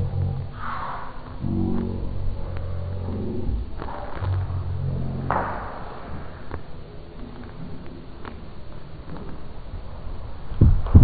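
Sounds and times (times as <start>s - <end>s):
breathy hiss: 0.0s - 6.5s.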